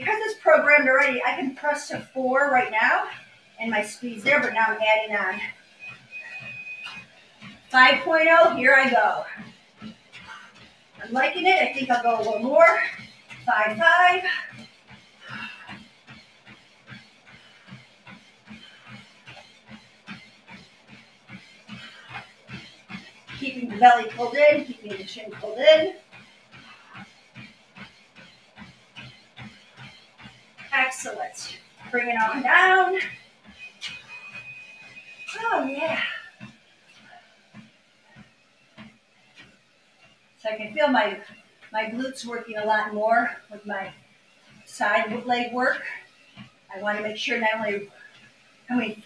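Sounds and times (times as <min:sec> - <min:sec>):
footfalls on treadmill belt: 0:00.0 - 0:49.0.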